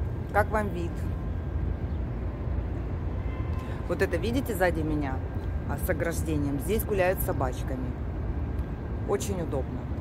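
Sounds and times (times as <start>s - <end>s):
city rumble: 0.0s - 10.0s.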